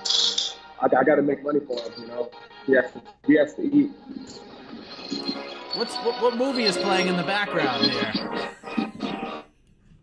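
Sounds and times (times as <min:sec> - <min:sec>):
movie soundtrack music from television: 0:00.0 - 0:10.0.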